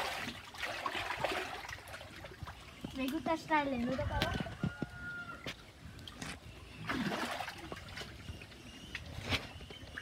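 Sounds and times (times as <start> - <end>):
water splash: 0.0 - 2.5, 6.8 - 8.1
water sloshing in pool: 0.0 - 4.6, 5.5 - 10.0.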